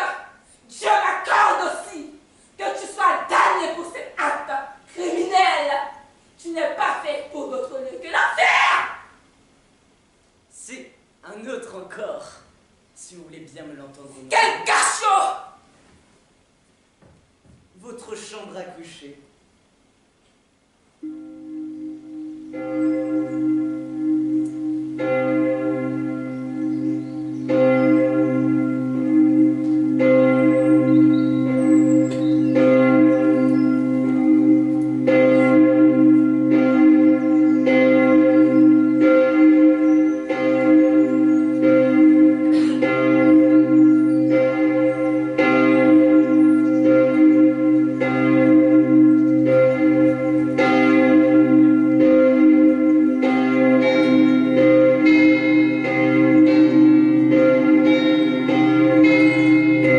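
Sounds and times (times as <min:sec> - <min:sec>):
church bells ringing: 0:21.0 - 0:59.9.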